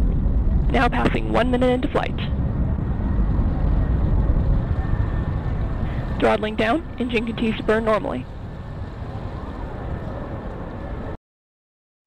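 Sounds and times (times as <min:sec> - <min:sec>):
distant rocket rumble: 0:00.0 - 0:11.2.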